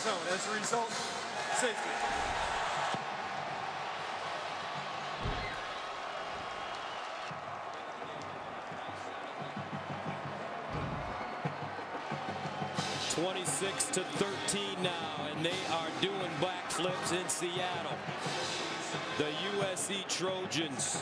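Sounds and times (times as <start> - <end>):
music playing in stadium: 0.0 - 21.0
stadium crowd noise: 0.0 - 21.0
low thumps: 5.2 - 5.7.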